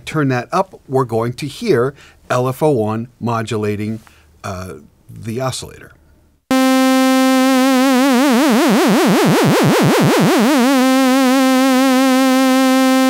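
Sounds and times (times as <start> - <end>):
synthesizer note with vibrato: 6.5 - 13.0.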